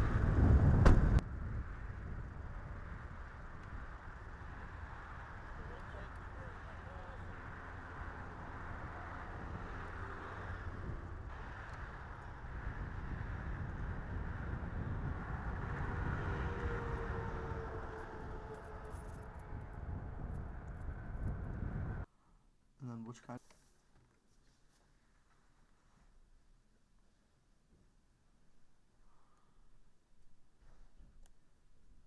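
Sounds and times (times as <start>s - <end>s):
vehicle passing: 0.0s - 22.0s
low rumble of traffic: 0.0s - 22.1s.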